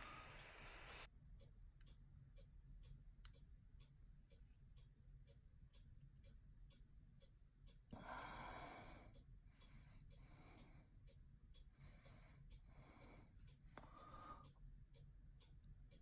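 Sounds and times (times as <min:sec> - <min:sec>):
faint breathing: 0:00.0 - 0:01.1, 0:07.9 - 0:14.6.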